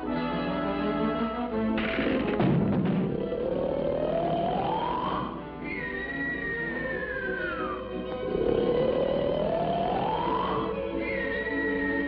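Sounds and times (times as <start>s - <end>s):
orchestral music: 0.0s - 12.0s
whistle sliding down in pitch: 4.4s - 7.9s, 9.2s - 12.0s
cartoon snoring: 8.2s - 10.4s.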